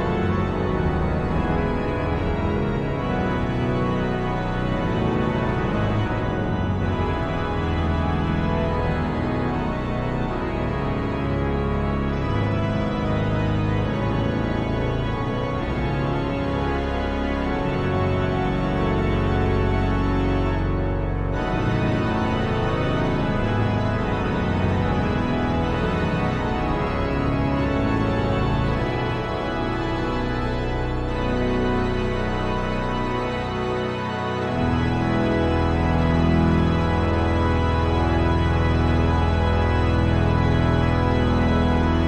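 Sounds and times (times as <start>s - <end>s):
organ pedal bass line: 0.0s - 42.0s
pipe organ chords: 0.0s - 42.0s.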